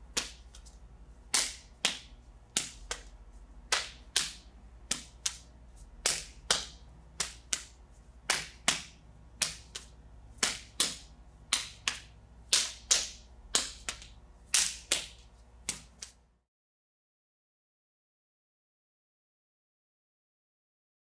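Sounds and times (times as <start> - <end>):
palms slapping forearms: 0.1 - 16.2.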